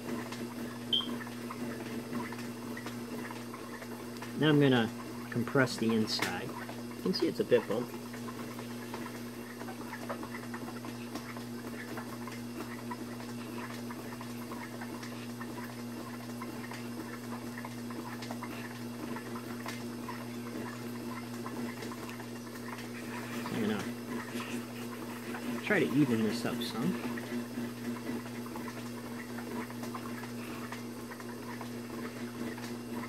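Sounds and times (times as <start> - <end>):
low electric hum: 0.0 - 33.0.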